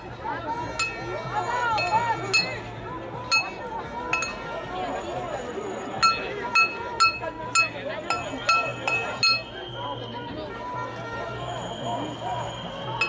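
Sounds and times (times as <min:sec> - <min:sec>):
crowd chatter: 0:00.0 - 0:13.0
stick beating metal saucepan: 0:00.8 - 0:01.0, 0:01.8 - 0:02.6, 0:03.3 - 0:03.5, 0:04.2 - 0:04.4, 0:06.0 - 0:09.4.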